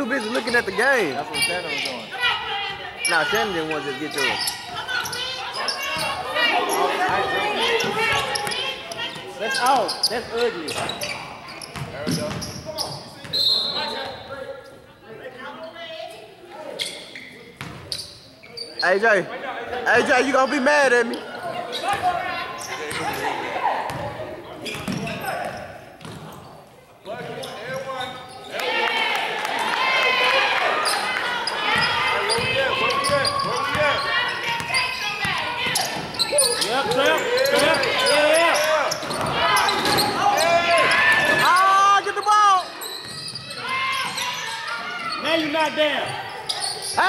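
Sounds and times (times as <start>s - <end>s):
players calling out: 0.0s - 14.3s, 27.2s - 47.0s
basketball bouncing: 11.7s - 12.5s.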